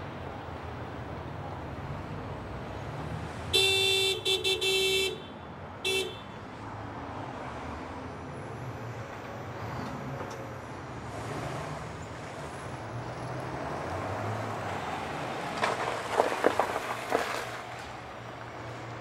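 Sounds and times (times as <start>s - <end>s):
car horn honking: 3.5s - 6.4s.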